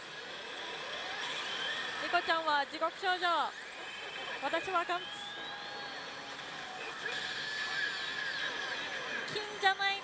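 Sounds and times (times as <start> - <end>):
din of many pachinko machines: 0.0 - 10.0.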